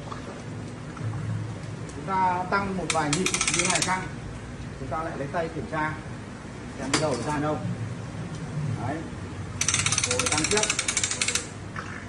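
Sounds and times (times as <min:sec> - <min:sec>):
ratchet clicking rapidly: 0:02.8 - 0:04.1, 0:09.6 - 0:11.6.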